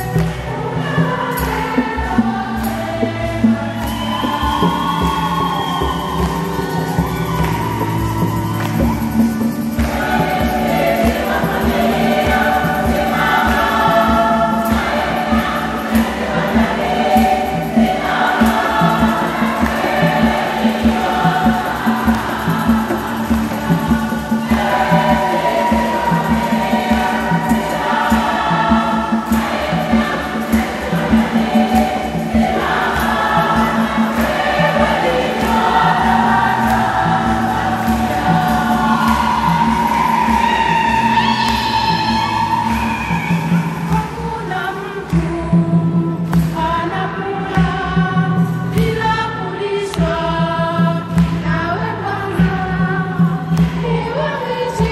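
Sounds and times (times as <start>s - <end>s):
women's choir singing a hymn: 0.0s - 54.9s
steady beat: 2.6s - 44.4s.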